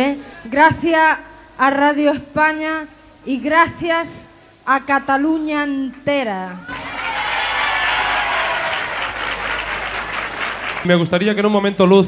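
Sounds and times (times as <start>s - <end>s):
audience applauding: 6.7s - 10.9s.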